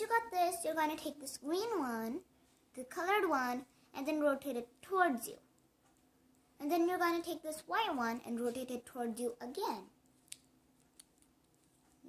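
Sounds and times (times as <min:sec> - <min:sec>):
faint plastic puzzle clicks: 0:10.0 - 0:12.0.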